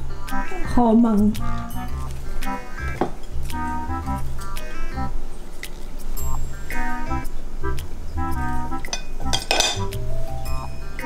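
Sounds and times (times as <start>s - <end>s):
background music with steady beat: 0.0s - 11.0s
chopsticks clattering on ceramic plate: 8.9s - 9.9s.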